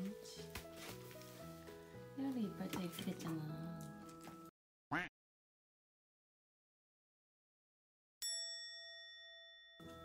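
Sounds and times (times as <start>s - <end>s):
background music: 0.0s - 4.5s
bright bell-like ding: 8.2s - 10.0s.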